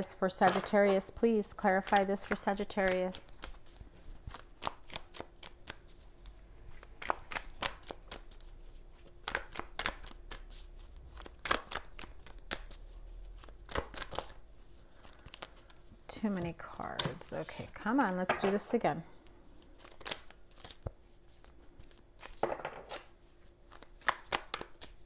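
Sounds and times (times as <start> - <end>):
cards being shuffled by hand: 0.4 - 16.0, 19.5 - 25.0.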